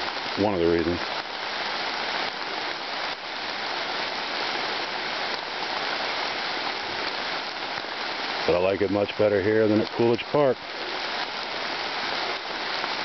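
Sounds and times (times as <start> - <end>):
rain falling on leaves: 0.0 - 13.0.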